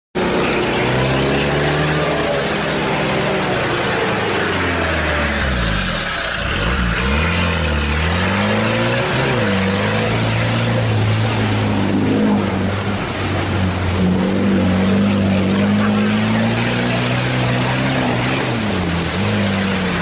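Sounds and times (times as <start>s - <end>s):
vehicle engine under load: 0.2s - 20.0s
water rushing and splashing: 0.2s - 20.0s.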